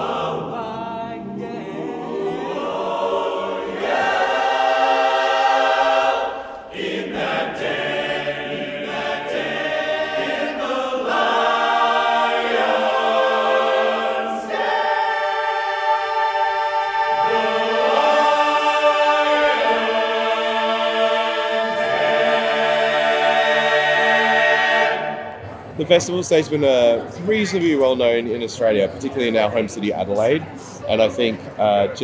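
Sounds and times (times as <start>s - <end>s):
men's a cappella chorus singing: 0.0s - 25.4s.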